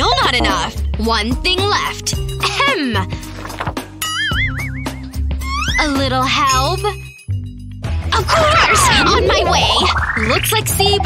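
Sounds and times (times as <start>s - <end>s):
background music: 0.0s - 11.0s
high warbling tone: 8.3s - 11.0s.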